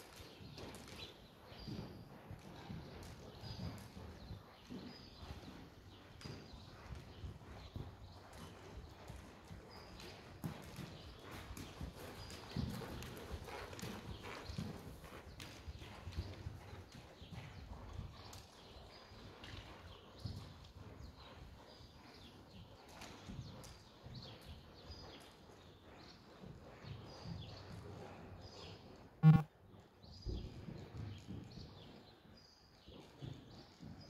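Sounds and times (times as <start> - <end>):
horse hoofbeats trotting on soft ground: 0.0 - 29.1, 29.7 - 34.0.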